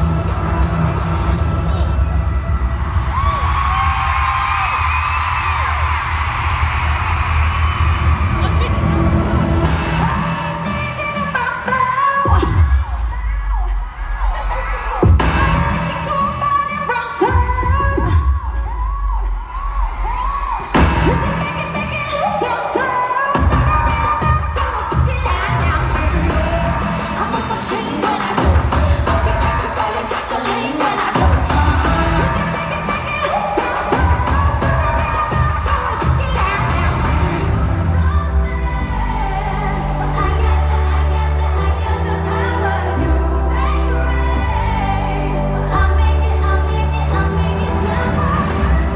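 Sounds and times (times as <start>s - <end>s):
crowd cheering: 0.0s - 43.0s
pop concert music with heavy bass: 0.0s - 48.9s.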